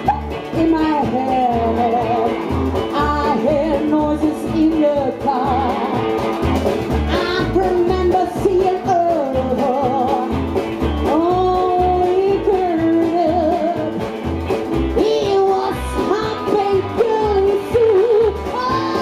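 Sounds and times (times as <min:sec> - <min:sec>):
drums beat: 0:00.0 - 0:19.0
electric guitar melody: 0:00.0 - 0:19.0
upright bass: 0:00.0 - 0:19.0.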